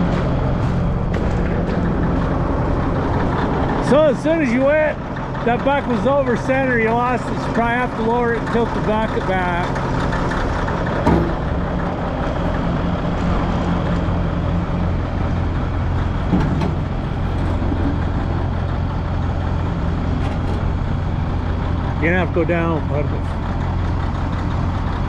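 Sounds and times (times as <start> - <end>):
diesel engine running: 0.0 - 25.0.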